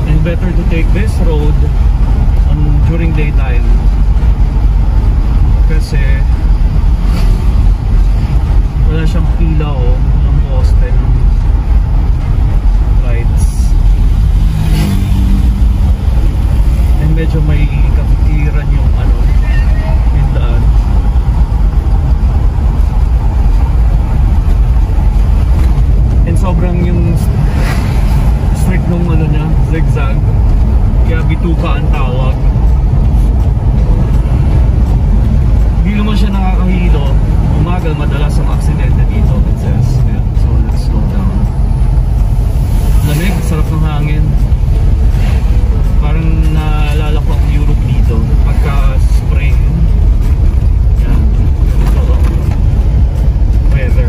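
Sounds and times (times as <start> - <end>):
people talking: 0.0 - 1.7, 2.4 - 3.8, 5.6 - 6.4, 8.8 - 11.1, 13.0 - 13.8, 16.9 - 20.8, 26.2 - 27.4, 28.5 - 30.3, 31.0 - 32.5, 35.8 - 41.5, 42.9 - 44.5, 45.8 - 49.9, 51.0 - 52.5, 53.6 - 54.0
car engine and tyres rumbling: 0.0 - 54.0.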